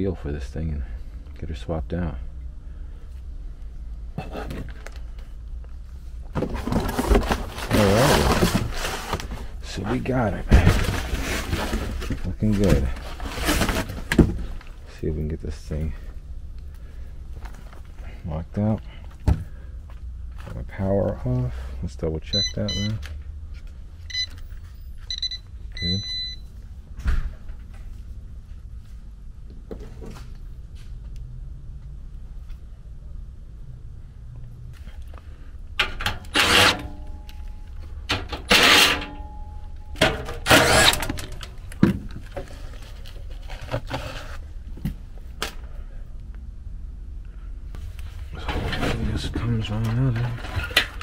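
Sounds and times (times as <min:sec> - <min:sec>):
voltage tester beeping: 0:22.3 - 0:23.0, 0:25.1 - 0:26.4.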